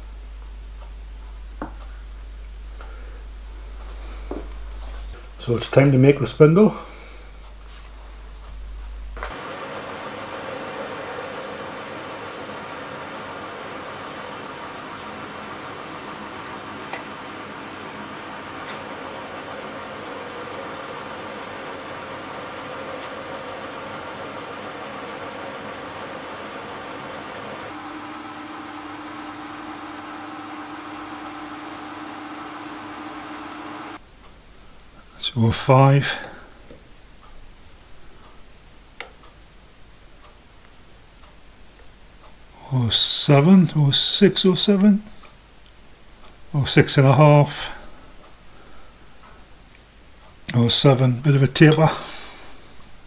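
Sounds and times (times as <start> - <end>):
high whine: 27.7 - 34.0
metal lathe running: 27.7 - 34.0.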